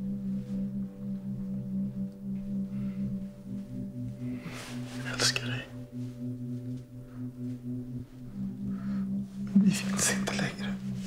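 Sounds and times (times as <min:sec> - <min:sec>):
low sustained musical drone: 0:00.0 - 0:11.0.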